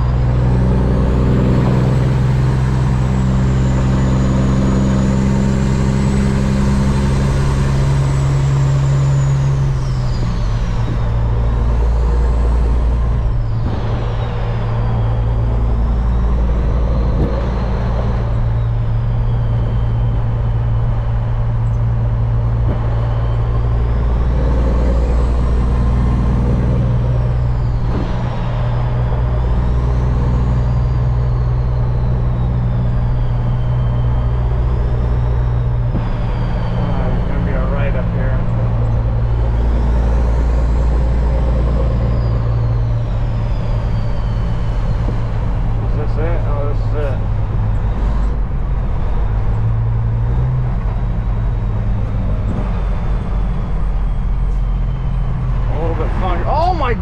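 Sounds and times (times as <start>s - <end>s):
truck diesel engine running: 0.0s - 57.0s.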